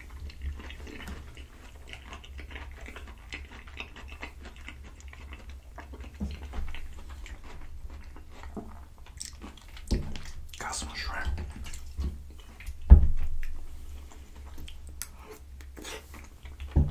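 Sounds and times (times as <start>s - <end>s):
chewing with wet mouth clicks: 0.0s - 16.9s.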